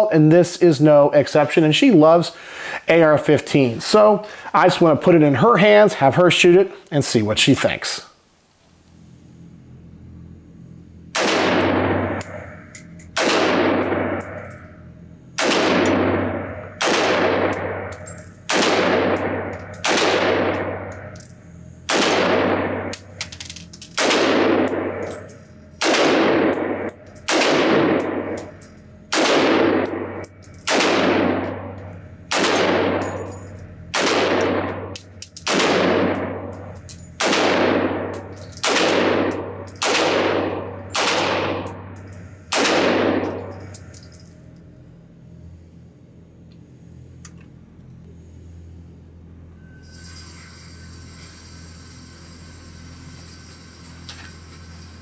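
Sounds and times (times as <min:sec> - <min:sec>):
rifle shots echoing indoors: 0:11.1 - 0:14.6, 0:15.4 - 0:21.1, 0:21.9 - 0:23.0, 0:24.0 - 0:25.2, 0:25.8 - 0:36.5, 0:37.1 - 0:43.4.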